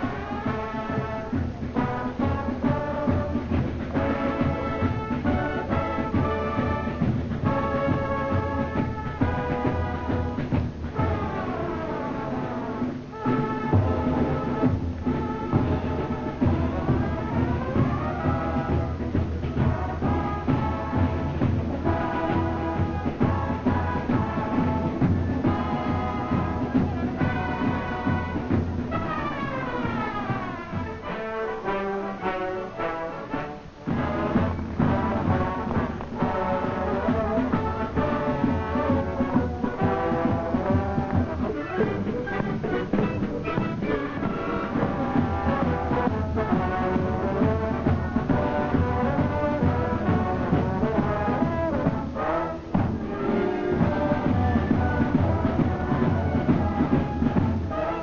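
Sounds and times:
wind band playing: 0.0 - 58.0.

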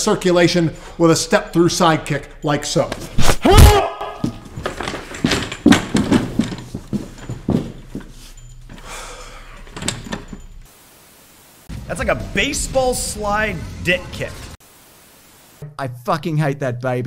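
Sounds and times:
thuds: 3.2 - 8.2
man yelling: 3.4 - 4.3
metal wheelchair rattling: 4.1 - 10.7.

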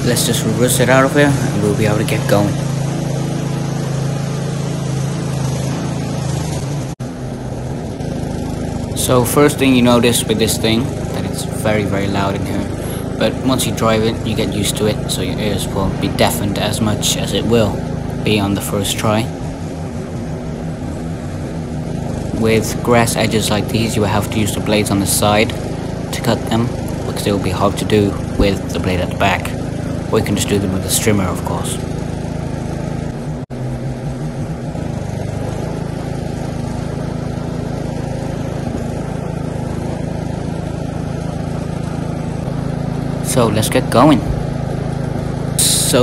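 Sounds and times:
ride-on mower engine droning: 0.0 - 46.0.

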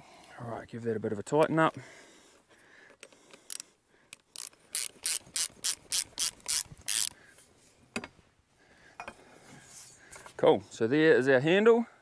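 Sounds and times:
ratchet spanner clicking: 4.2 - 7.1.

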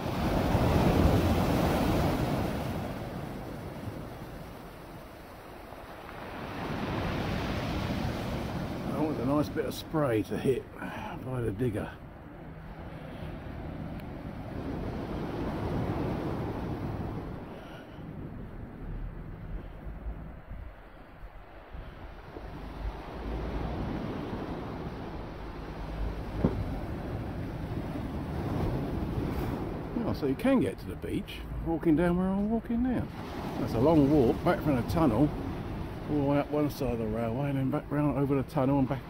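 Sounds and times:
waves breaking against a sea wall: 0.0 - 11.8, 12.4 - 18.8, 20.6 - 30.8, 32.0 - 39.0
wind buffeting microphone: 12.0 - 30.6.

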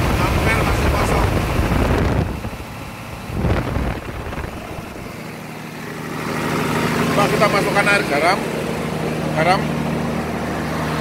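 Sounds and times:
diesel generator engine running: 0.0 - 11.0.

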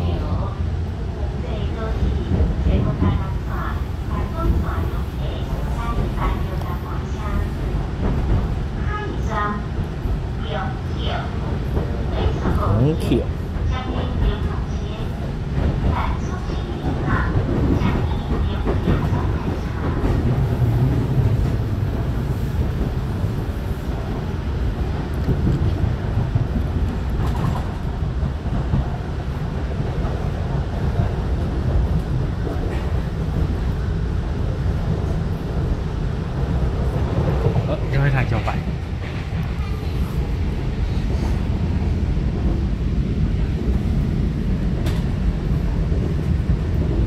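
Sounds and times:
train running rumble: 0.0 - 47.0.

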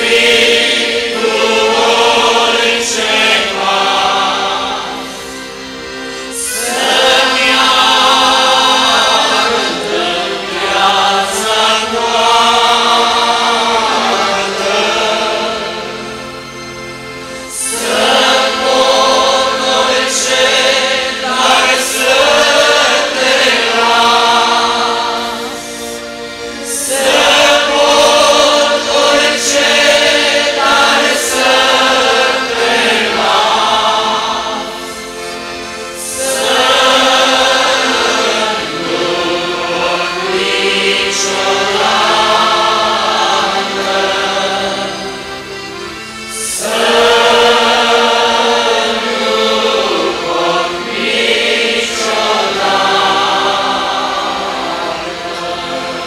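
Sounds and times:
accordions: 0.0 - 56.0
electronic keyboard: 0.0 - 56.0
group singing a hymn: 0.0 - 56.0.

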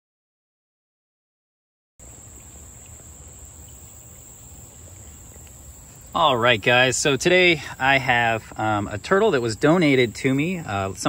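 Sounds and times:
insects droning: 2.0 - 11.0.

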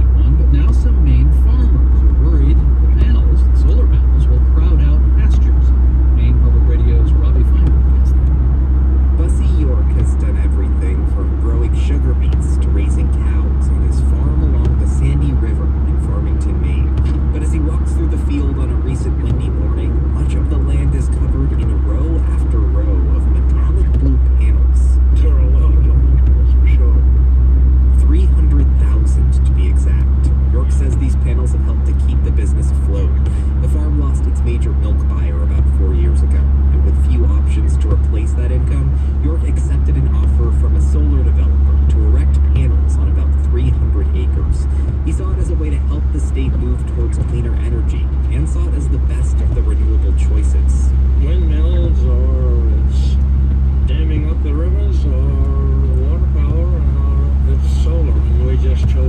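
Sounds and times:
muffled voices: 0.0 - 8.4, 9.1 - 27.1, 27.9 - 59.0
car cabin drone: 0.0 - 59.0.

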